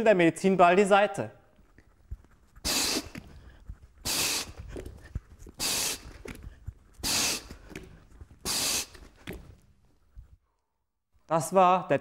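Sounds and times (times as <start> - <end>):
sharp forceful exhalations: 2.6 - 9.6
hands and ball thudding on mat: 9.2 - 9.6.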